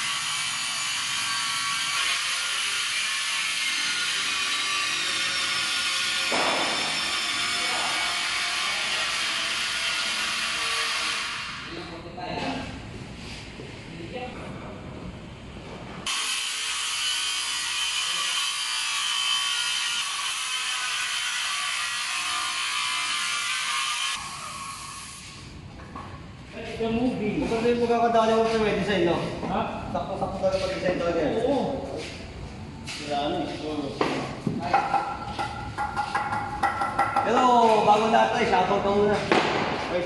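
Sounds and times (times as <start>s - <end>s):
high-pitched construction machine noise: 0.0s - 11.7s, 16.0s - 25.5s
sharp knocks on wood: 6.3s - 6.9s.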